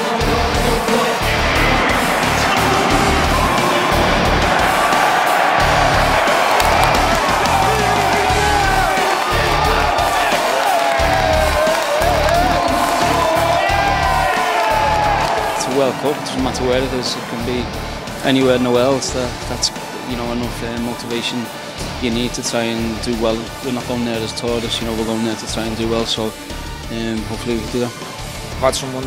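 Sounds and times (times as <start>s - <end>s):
rock music with steady beat: 0.0s - 29.0s
stadium crowd cheering: 0.0s - 29.0s.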